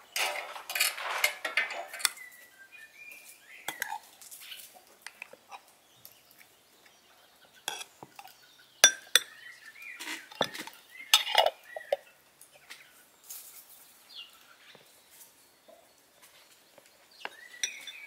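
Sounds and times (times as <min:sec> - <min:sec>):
metal spoon clinking on glass jar: 0:03.7 - 0:04.0, 0:08.8 - 0:09.3, 0:11.2 - 0:11.6, 0:17.6 - 0:18.0
spoon scraping porcelain bowl: 0:03.7 - 0:04.1, 0:07.7 - 0:09.3, 0:10.0 - 0:12.0.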